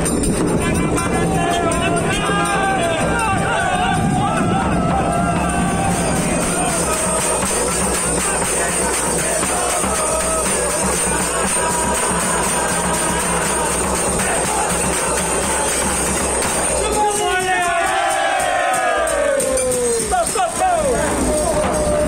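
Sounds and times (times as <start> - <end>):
men singing: 0.6 - 17.0
people clapping: 0.8 - 22.0
small hand cymbals: 18.7 - 22.0.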